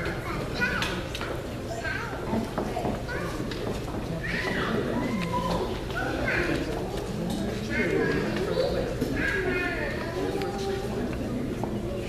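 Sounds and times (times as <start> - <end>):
chatter of adults and children: 0.0 - 12.0.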